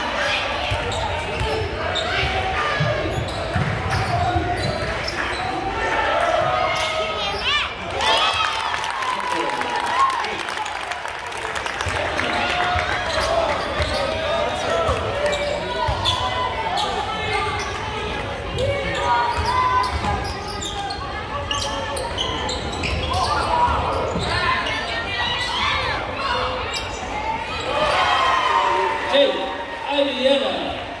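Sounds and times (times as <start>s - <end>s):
spectators talking and calling out: 0.0s - 31.0s.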